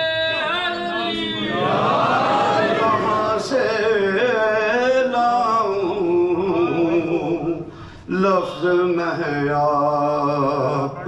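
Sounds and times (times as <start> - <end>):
man singing unaccompanied: 0.0 - 1.7, 2.9 - 11.0.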